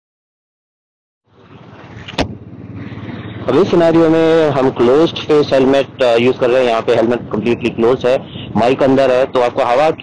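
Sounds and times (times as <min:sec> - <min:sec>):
muffled motorcycle engine rumble: 0:01.3 - 0:10.0
wind noise: 0:01.6 - 0:10.0
man speaking: 0:03.4 - 0:10.0.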